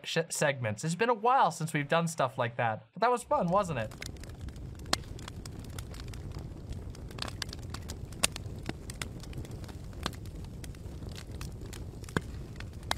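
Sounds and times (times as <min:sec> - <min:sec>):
fire rumbling and crackling: 0:03.1 - 0:12.9.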